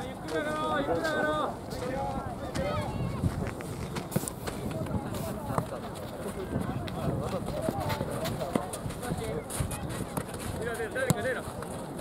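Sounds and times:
players' voices and calls: 0.0 - 12.0
soccer ball being kicked: 6.6 - 9.2, 10.0 - 11.4.

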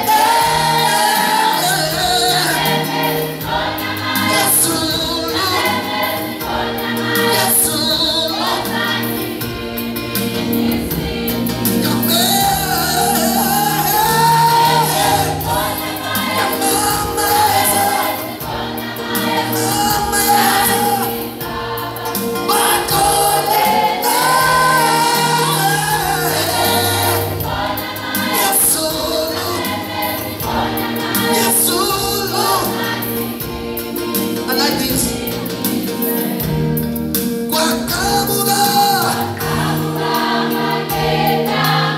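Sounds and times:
gospel choir singing: 0.0 - 41.9.

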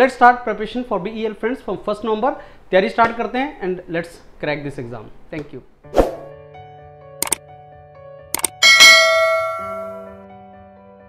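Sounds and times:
quick double click: 8.4 - 8.6
bright bell ding: 8.4 - 10.2.

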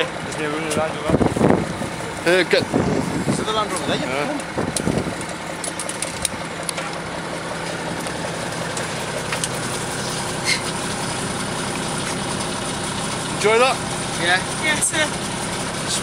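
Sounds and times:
armoured vehicle engine idling: 0.0 - 16.0.

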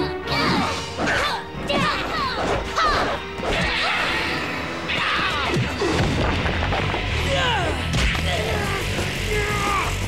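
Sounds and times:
action music: 0.0 - 10.0.

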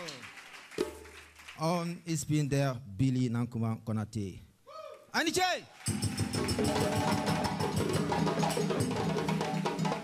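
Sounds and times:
drum ensemble playing fast rhythm: 0.7 - 1.4, 5.8 - 10.0.

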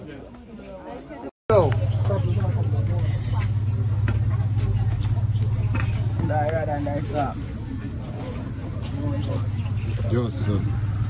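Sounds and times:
faint voices chattering: 0.0 - 11.0
engine idling: 1.5 - 11.0.

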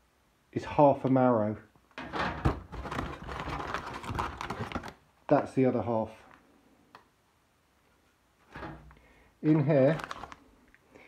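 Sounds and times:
plastic bags crinkling: 2.6 - 5.0, 9.4 - 10.8.

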